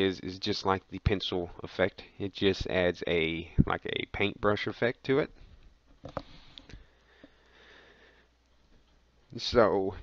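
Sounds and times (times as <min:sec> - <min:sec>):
breath-like noises: 0:05.4 - 0:08.4.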